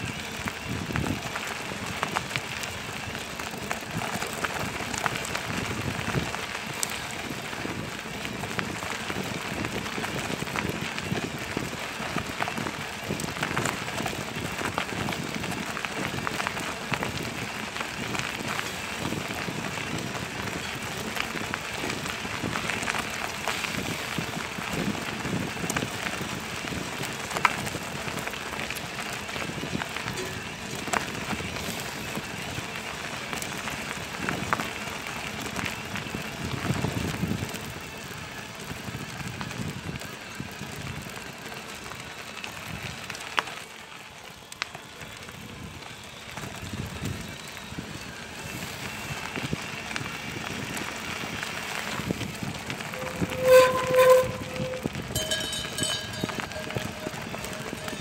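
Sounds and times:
bicycle tyres rolling on gravel: 0.0s - 58.0s
bike rattling and ticking: 0.0s - 58.0s.

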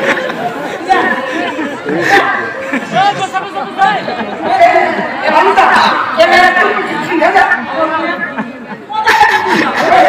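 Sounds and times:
several voices talking with echo: 0.0s - 10.0s.

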